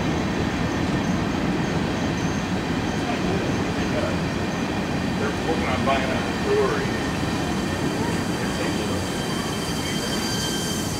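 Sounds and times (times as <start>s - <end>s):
train wheels rumbling on rails: 0.0s - 10.9s.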